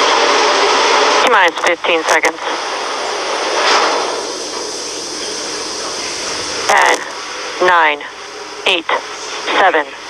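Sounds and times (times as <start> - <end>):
steady hiss: 2.4 - 7.4.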